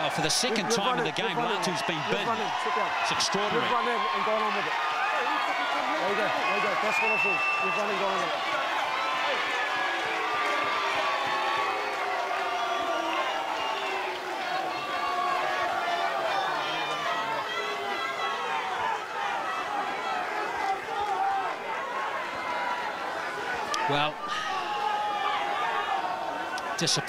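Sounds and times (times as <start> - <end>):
crowd shouting and chattering: 0.0 - 27.0.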